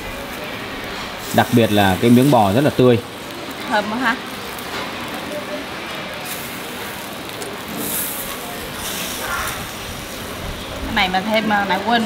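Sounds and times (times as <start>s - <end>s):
beef sizzling on a grill: 0.0s - 12.0s.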